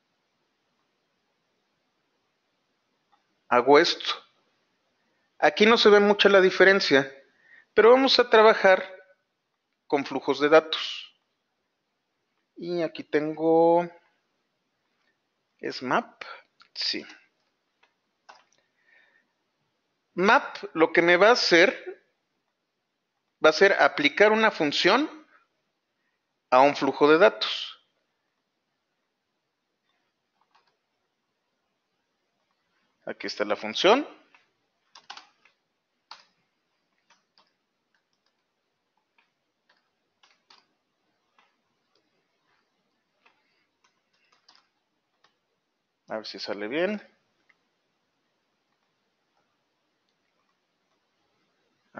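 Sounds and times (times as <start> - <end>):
computer keyboard keystrokes: 17.8 - 18.6, 30.4 - 30.8, 34.3 - 40.7, 43.2 - 45.4.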